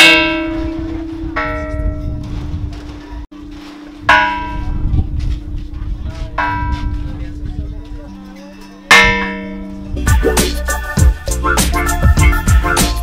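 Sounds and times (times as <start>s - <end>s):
large bronze bell ringing: 0.0s - 2.3s, 2.9s - 10.1s.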